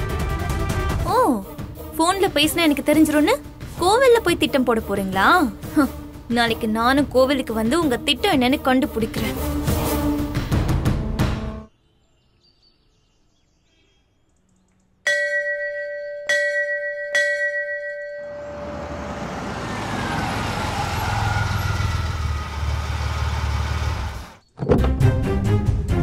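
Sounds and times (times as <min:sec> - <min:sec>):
metal bell ringing: 0:15.1 - 0:18.6
street traffic noise: 0:18.1 - 0:24.4
low engine rumble: 0:18.4 - 0:24.4.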